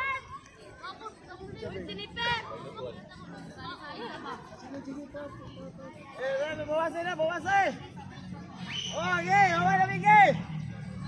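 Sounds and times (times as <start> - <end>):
spectators and players chattering: 0.0 - 11.0.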